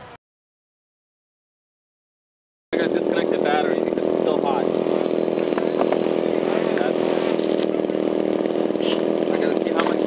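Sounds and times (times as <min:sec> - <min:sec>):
small engine droning: 0:02.8 - 0:10.0
short high beep: 0:05.0 - 0:06.3.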